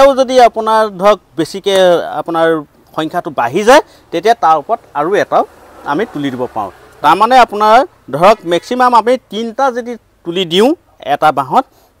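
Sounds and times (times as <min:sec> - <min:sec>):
man speaking: 0:00.0 - 0:11.7.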